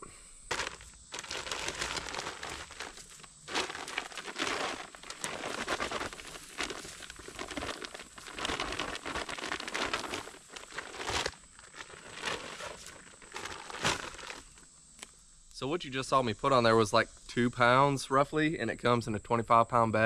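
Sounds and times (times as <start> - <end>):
plastic bag crinkling: 0.5 - 14.6.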